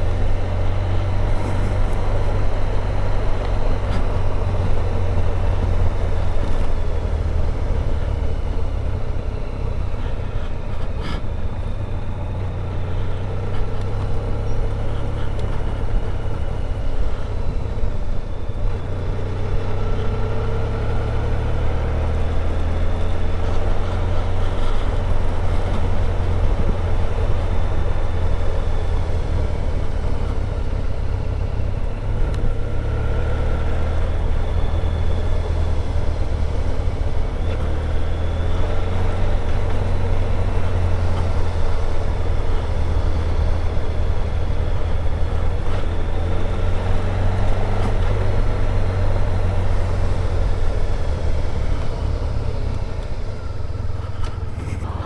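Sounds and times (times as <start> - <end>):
motorcycle engine low rumble: 0.0 - 55.0
tyre road noise: 0.0 - 55.0.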